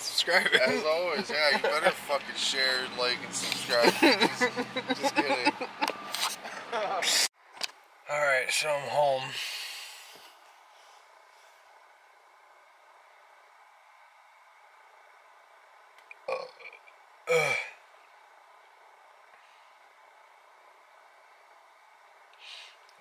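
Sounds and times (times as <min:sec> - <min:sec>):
faint car cabin hum: 0:00.0 - 0:06.0
man burping: 0:16.1 - 0:17.8.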